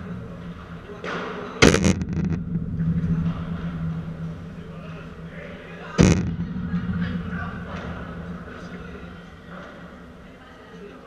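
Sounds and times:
ball hit with sharp crack: 1.1s - 2.6s, 6.0s - 7.0s.

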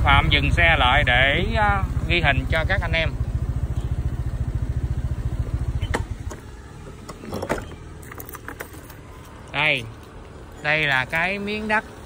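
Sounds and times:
small motorbike engine running: 0.0s - 12.0s
engine switch-off click: 5.8s - 6.4s.

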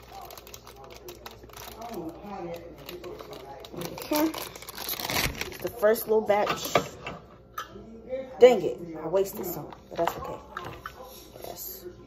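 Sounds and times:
crinkling: 0.0s - 5.8s.

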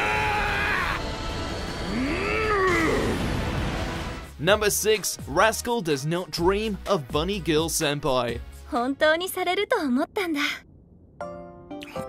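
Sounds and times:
low rumble of sound effects: 9.1s - 11.6s.

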